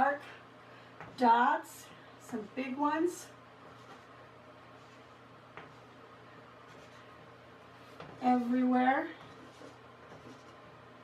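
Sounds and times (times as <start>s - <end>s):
chalk tapping on chalkboard: 9.2s - 10.6s.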